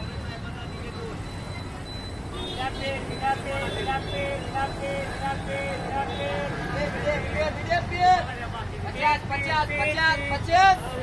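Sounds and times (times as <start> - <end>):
vendor calling out: 0.0 - 11.0.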